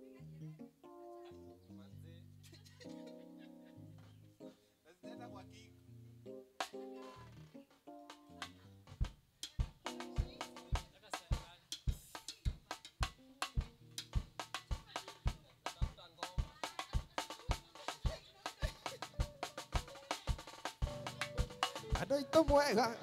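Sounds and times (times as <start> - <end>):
live band music: 8.0 - 23.0
bass drum beats: 8.4 - 23.0.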